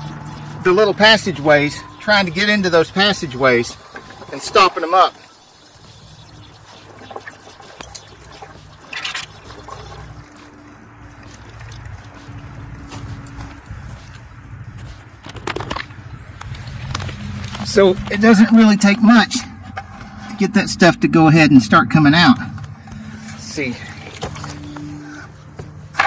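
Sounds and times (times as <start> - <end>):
water rushing from hose into bucket: 0.0 - 13.1, 16.4 - 20.7.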